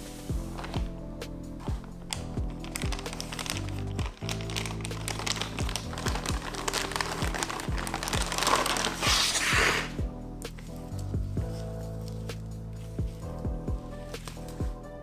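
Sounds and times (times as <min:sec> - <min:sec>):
background music with beat: 0:00.0 - 0:15.0
plastic bag crinkling: 0:01.7 - 0:10.0.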